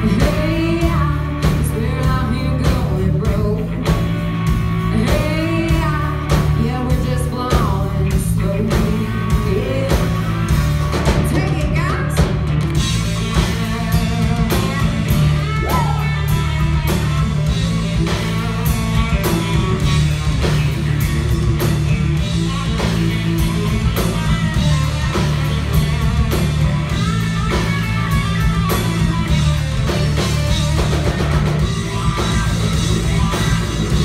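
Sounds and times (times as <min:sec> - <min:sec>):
bass guitar: 0:00.0 - 0:34.0
drum kit steady beat: 0:00.0 - 0:34.0
electric guitar lead: 0:00.0 - 0:34.0.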